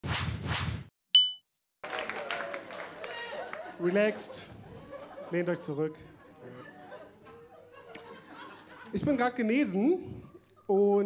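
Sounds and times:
quick whooshes: 0.0 - 0.9.

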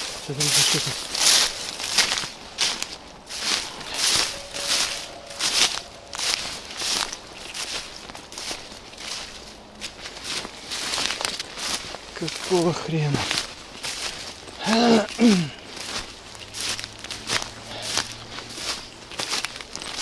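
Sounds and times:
footsteps through tall grass: 0.0 - 20.0
vegetation rustling: 0.0 - 20.0.

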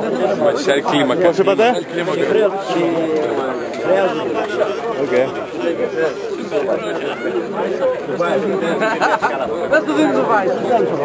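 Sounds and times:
men talking over one another: 0.0 - 11.0.

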